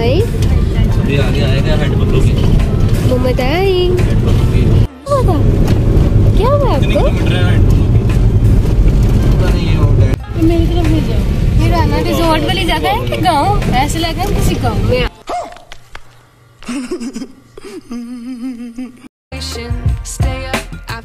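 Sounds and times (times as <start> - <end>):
road rumble inside car: 0.0 - 15.1.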